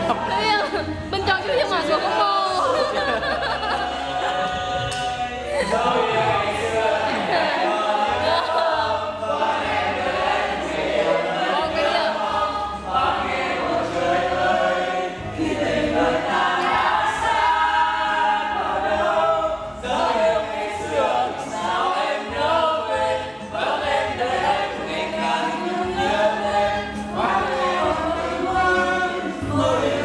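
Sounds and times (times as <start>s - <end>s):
group of people singing: 0.0s - 30.0s
low musical accompaniment: 0.0s - 30.0s.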